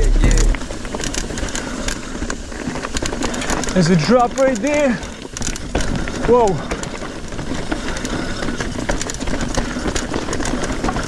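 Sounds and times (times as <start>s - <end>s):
bike tyres knocking on rock: 0.0s - 11.0s
steady rushing noise: 0.0s - 11.0s.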